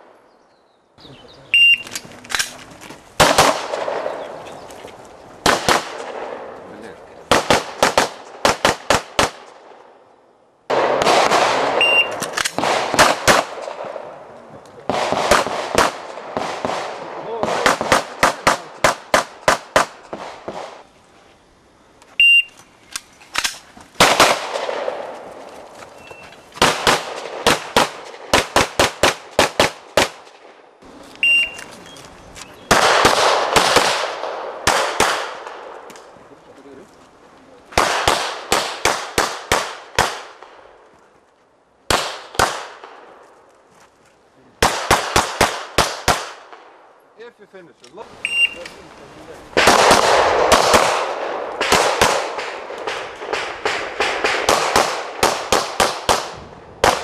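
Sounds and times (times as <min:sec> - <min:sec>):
shot timer beep: 0:01.6 - 0:01.9, 0:11.8 - 0:12.2, 0:22.2 - 0:22.6, 0:31.2 - 0:31.6, 0:48.2 - 0:48.6
rapid pistol shots: 0:03.2 - 0:04.3, 0:05.4 - 0:06.5, 0:07.3 - 0:09.8, 0:10.7 - 0:14.1, 0:14.9 - 0:20.8, 0:23.4 - 0:25.1, 0:26.6 - 0:30.6, 0:32.7 - 0:35.9, 0:37.7 - 0:40.6, 0:41.9 - 0:43.0, 0:44.6 - 0:46.6, 0:49.6 - 0:57.0.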